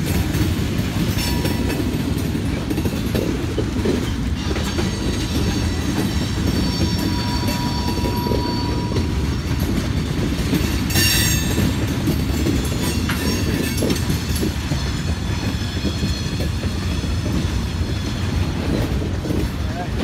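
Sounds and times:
train wheels rumbling on rail: 0.0s - 20.0s
high wheel squeal: 4.4s - 9.6s.

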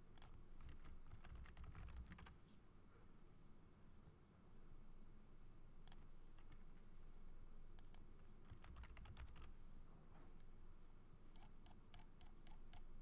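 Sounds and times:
typing on computer keyboard: 0.2s - 2.4s, 8.5s - 9.5s, 11.4s - 12.9s.

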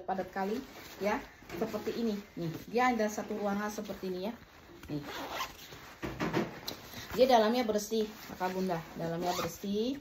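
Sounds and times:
zipper pulled open: 4.8s - 5.9s, 8.3s - 9.7s.

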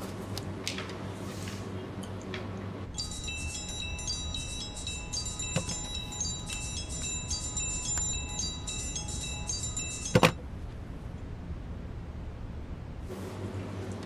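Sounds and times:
phone ringtone chiming melody: 2.9s - 10.4s.

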